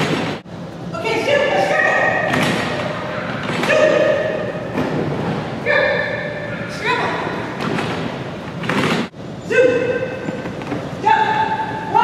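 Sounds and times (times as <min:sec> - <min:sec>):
person shouting calls: 0:05.6 - 0:07.3, 0:09.5 - 0:10.2.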